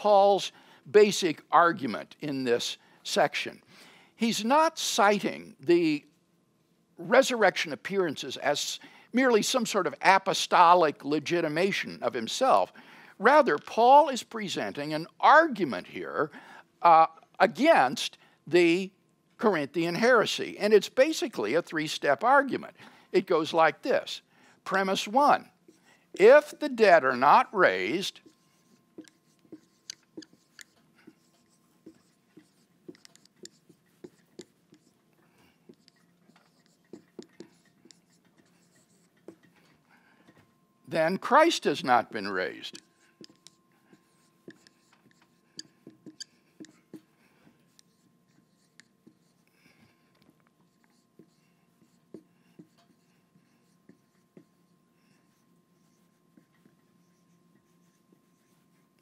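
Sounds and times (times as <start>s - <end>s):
marker squeaking on whiteboard: 25.0s - 39.8s, 41.3s - 59.0s.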